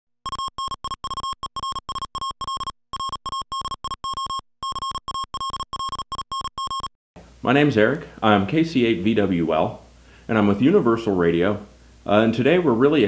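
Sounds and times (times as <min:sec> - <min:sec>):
morse code beeps: 0:00.2 - 0:06.9.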